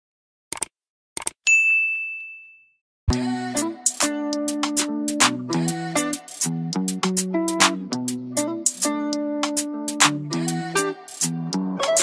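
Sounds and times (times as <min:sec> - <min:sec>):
bell ding: 0:01.5 - 0:02.8.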